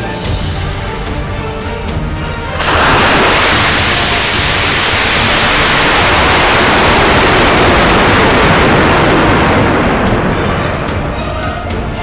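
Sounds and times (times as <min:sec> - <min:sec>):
rocket motor and rushing air: 0:02.5 - 0:10.8.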